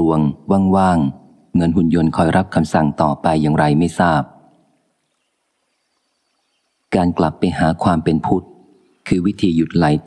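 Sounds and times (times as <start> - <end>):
man narrating: 0.0 - 4.4, 6.9 - 10.0.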